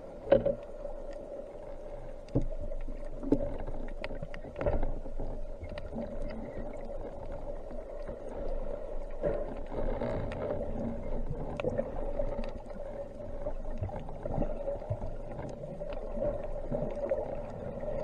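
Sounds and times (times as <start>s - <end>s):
underwater low drone: 0.0s - 18.0s
faint clicks: 0.1s - 18.0s.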